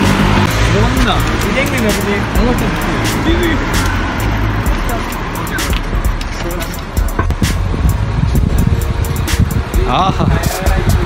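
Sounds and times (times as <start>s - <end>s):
background music: 0.0s - 11.0s
street traffic: 0.0s - 11.0s
wind rumbling on microphone: 5.7s - 11.0s.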